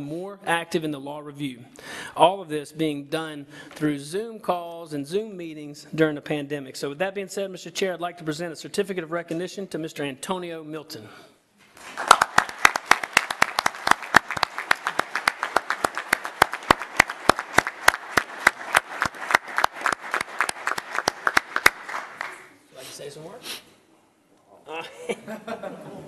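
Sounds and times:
people clapping: 11.7 - 22.6.

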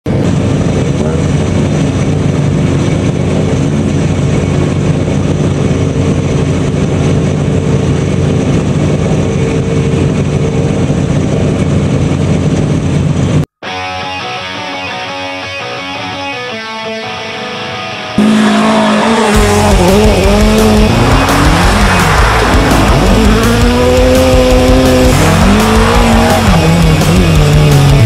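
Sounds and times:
car engine running: 0.0 - 13.5, 18.2 - 28.0.

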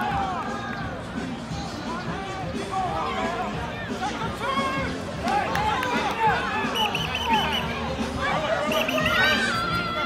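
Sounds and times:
children calling and shouting: 0.0 - 10.0
crowd chatter outdoors: 0.0 - 10.0.

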